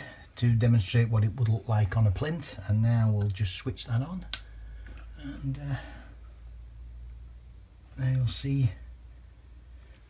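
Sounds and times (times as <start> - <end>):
steady low hum: 0.0 - 10.0
faint high-pitched tones: 4.6 - 10.0.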